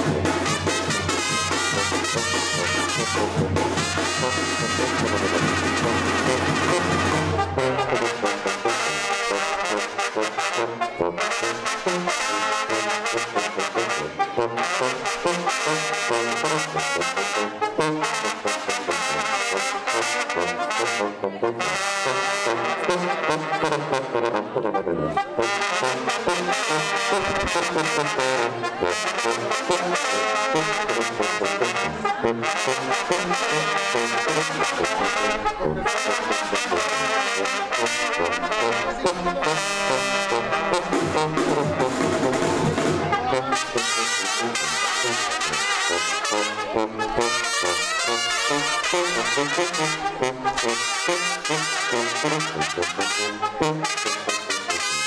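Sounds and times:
brass band playing lively tune: 0:00.0 - 0:55.0.

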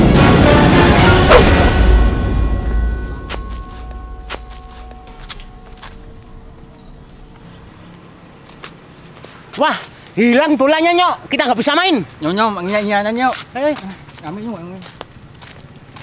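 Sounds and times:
deep boom rumble: 0:00.3 - 0:08.4.

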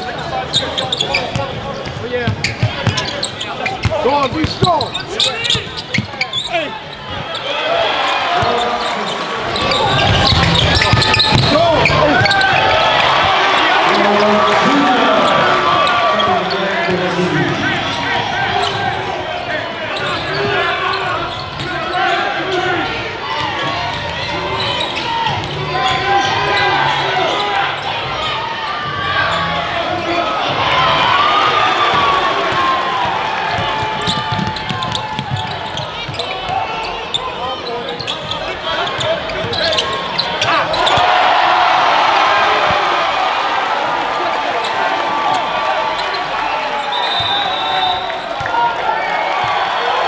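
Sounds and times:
crowd voices and shouts: 0:00.0 - 0:50.0
basketball bouncing on court: 0:01.2 - 0:06.2, 0:09.6 - 0:13.4, 0:31.9 - 0:36.5.

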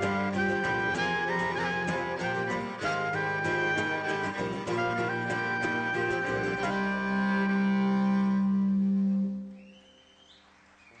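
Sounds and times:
folk tune long low note: 0:00.0 - 0:10.2.

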